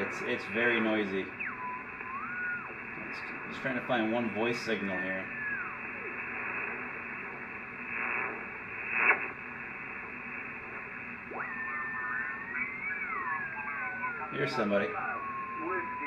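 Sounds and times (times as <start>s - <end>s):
radio whistle gliding down: 0.0s - 3.5s, 5.0s - 9.4s, 10.0s - 16.0s
radio static: 0.0s - 16.0s
static crackle: 0.0s - 16.0s.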